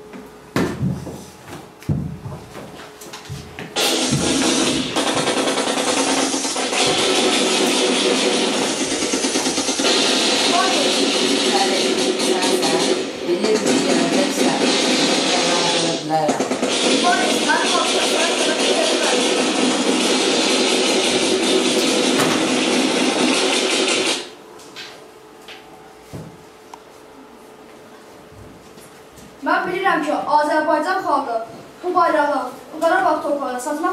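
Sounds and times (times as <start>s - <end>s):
dense noisy background: 0.0s - 33.9s
played-back music: 3.7s - 24.4s
played-back voice: 10.4s - 19.5s.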